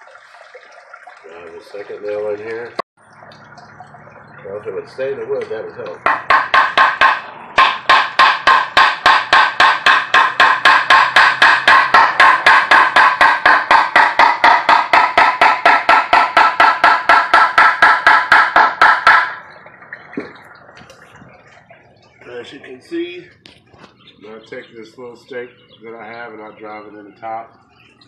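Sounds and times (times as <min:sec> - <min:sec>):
hammer driving nail into wood: 0:06.1 - 0:19.4.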